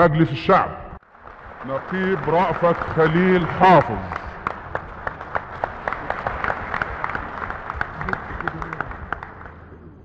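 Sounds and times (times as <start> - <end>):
man's voice: 0.0 - 1.0, 1.7 - 4.2
audience applauding: 1.0 - 10.0.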